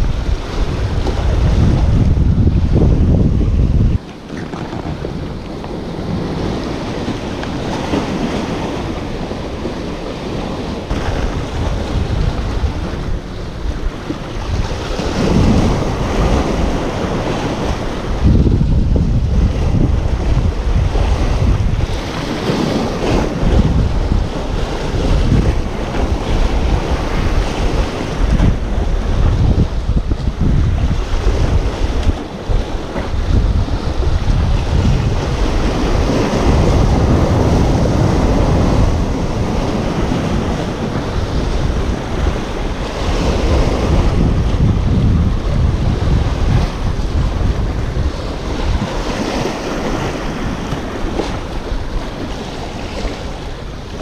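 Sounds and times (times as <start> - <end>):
waves splashing against rocks: 0.0 - 54.0
wind buffeting microphone: 0.0 - 54.0.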